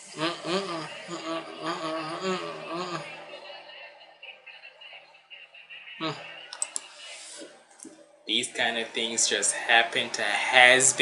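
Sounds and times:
faint voices: 0:00.0 - 0:11.0
computer mouse clicks: 0:06.5 - 0:06.9.

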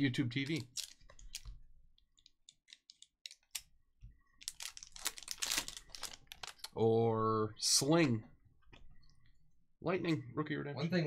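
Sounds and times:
foil card pack crinkling: 0:04.4 - 0:06.7.

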